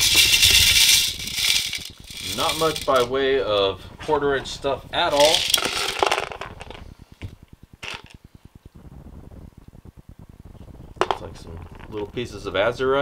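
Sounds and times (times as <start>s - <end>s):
gravel rattling in screen: 0.0s - 13.0s
stones clattering into plastic pan: 5.1s - 6.8s.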